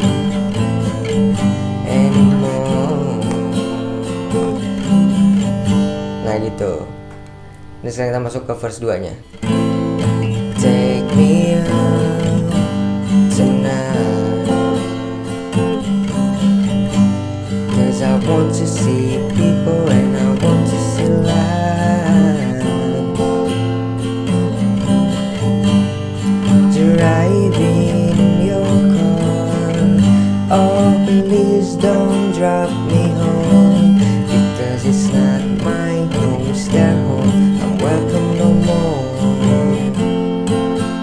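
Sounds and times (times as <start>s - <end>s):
acoustic guitar strumming: 0.0s - 41.0s.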